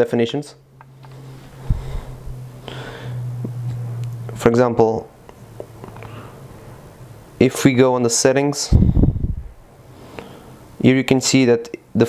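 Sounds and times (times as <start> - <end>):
steady low hum: 0.6 - 10.9
short breath: 1.6 - 3.3, 9.9 - 10.6.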